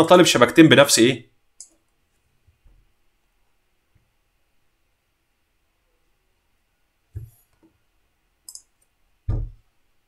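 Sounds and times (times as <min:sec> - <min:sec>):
computer mouse clicking: 0:01.6 - 0:01.9, 0:08.4 - 0:08.9.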